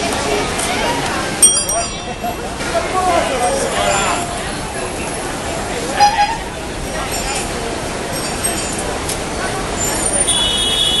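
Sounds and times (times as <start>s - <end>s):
crowd voices: 0.0s - 11.0s
traffic: 0.0s - 11.0s.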